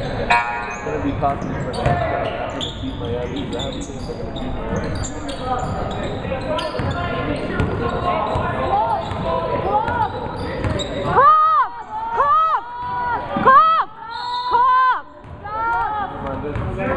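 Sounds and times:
sneakers squeaking on floor: 0.0s - 11.2s, 16.3s - 16.8s.

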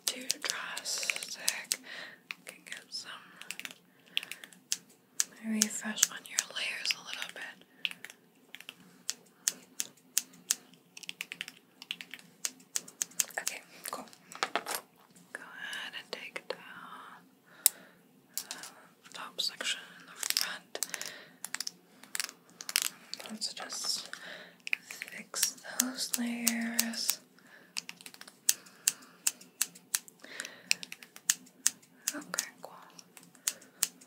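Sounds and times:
scissors snipping hair: 0.0s - 2.4s, 3.4s - 6.5s, 7.2s - 14.0s, 20.2s - 27.2s, 27.8s - 34.0s.

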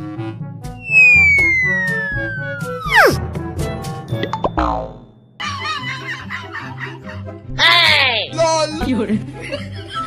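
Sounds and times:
background music: 0.0s - 10.0s
falling whistle glide: 0.8s - 3.2s
rising boing: 0.8s - 3.2s, 4.4s - 5.1s.

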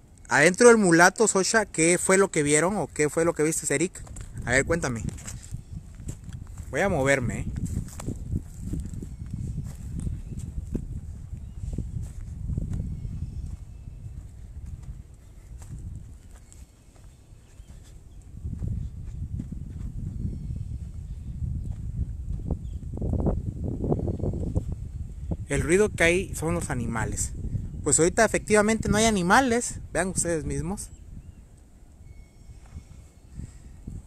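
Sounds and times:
low wind rumble: 2.1s - 34.0s
footsteps on dry dirt: 3.8s - 23.2s
microphone handling noise: 3.9s - 16.6s, 17.7s - 25.5s.

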